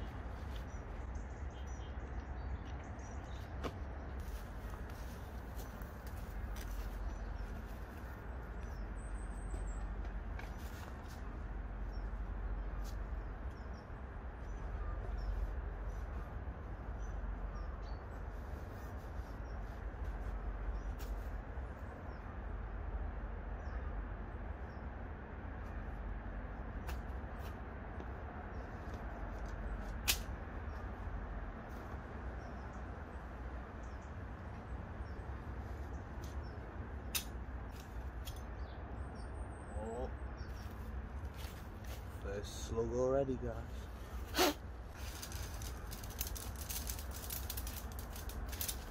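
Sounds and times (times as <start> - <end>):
faint bird chirp: 0.0 - 3.6, 11.8 - 16.2, 38.4 - 40.9
steady low rumble: 0.0 - 48.9
camping gear rustling and clicking: 44.2 - 48.9.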